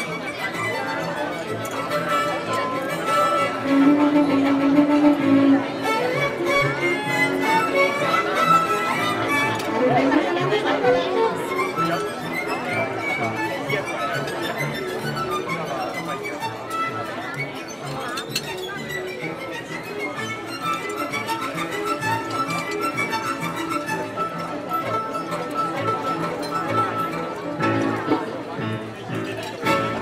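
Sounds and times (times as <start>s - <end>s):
violin melody: 0.0s - 30.0s.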